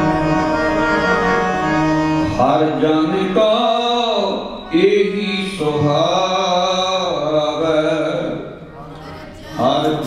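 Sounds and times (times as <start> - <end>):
harmonium: 0.0 - 8.3
man singing a hymn: 0.0 - 8.6, 9.5 - 10.0.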